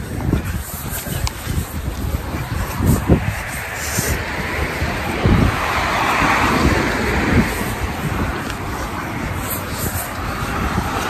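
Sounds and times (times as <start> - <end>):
wind buffeting microphone: 0.0 - 11.0
car passing: 1.7 - 11.0.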